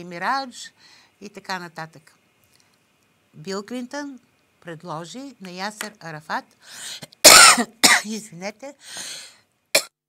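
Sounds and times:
intake of breath: 0:06.6 - 0:07.1, 0:08.8 - 0:09.5
woman coughing: 0:07.2 - 0:08.2.

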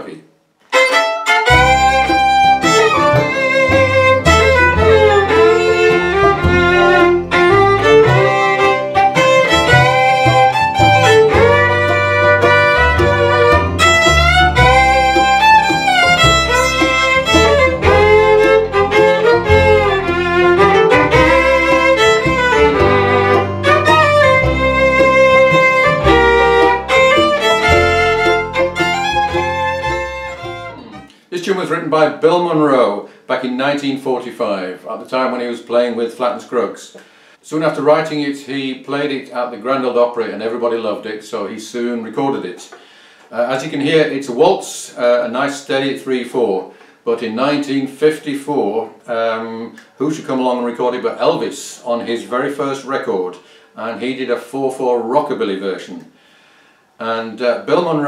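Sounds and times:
fiddle playing lively melody: 0:00.7 - 0:31.1
bass line: 0:01.3 - 0:31.1.

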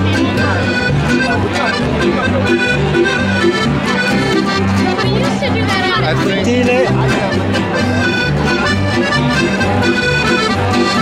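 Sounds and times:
accordion playing folk tune: 0:00.0 - 0:11.0
acoustic guitar strumming: 0:00.0 - 0:11.0.

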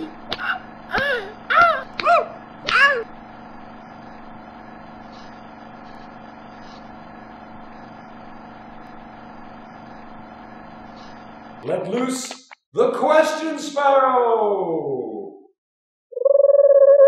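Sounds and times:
steady mechanical hum: 0:00.0 - 0:14.9.

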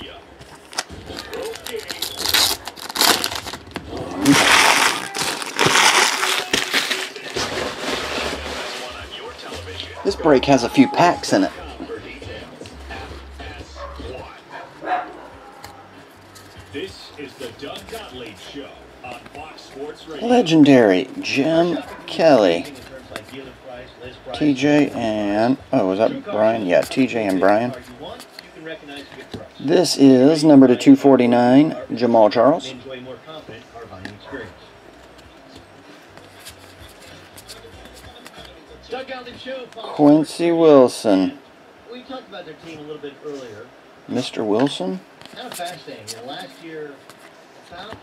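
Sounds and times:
faint radio talk and music: 0:00.0 - 0:48.0
dog barking: 0:13.8 - 0:15.9.

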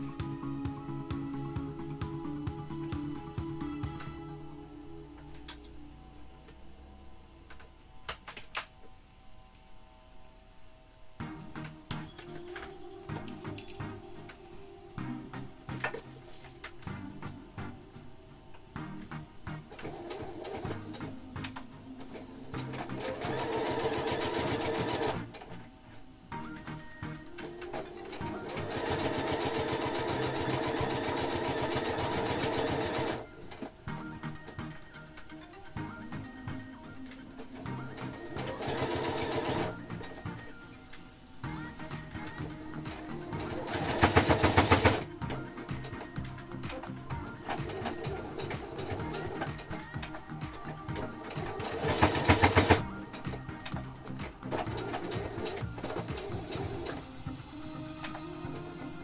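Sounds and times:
background music: 0:00.0 - 0:59.0
sewing machine stitching: 0:22.5 - 0:25.6, 0:27.4 - 0:33.4, 0:37.4 - 0:40.5, 0:42.0 - 0:46.1, 0:46.7 - 0:57.2.

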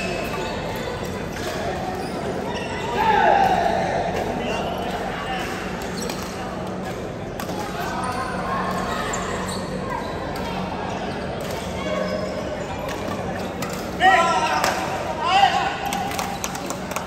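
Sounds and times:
players' voices: 0:00.0 - 0:17.0.

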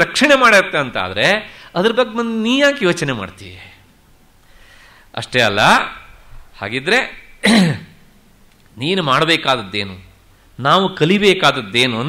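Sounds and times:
man speaking: 0:00.0 - 0:03.8, 0:05.2 - 0:07.9, 0:08.8 - 0:12.0
man clearing his throat: 0:07.4 - 0:08.0.

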